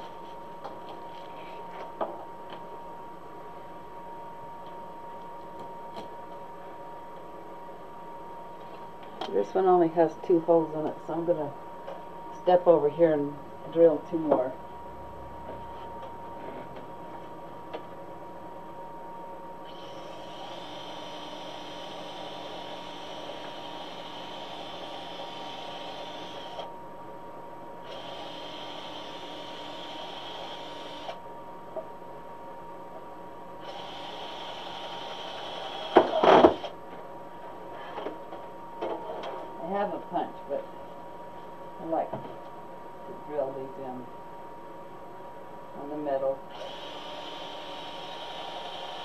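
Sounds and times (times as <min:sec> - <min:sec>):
electric drill running: 0:19.6 - 0:26.7, 0:27.8 - 0:31.2, 0:33.6 - 0:36.8, 0:46.5 - 0:49.0.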